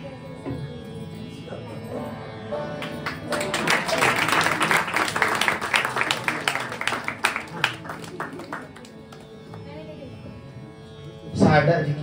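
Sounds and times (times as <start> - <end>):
tanpura drone: 0.0 - 12.0.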